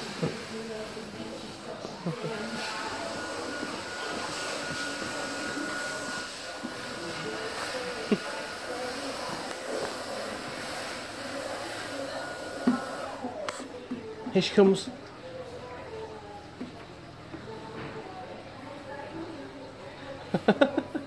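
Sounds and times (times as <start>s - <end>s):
electric hand dryer whirring: 0.0s - 13.8s.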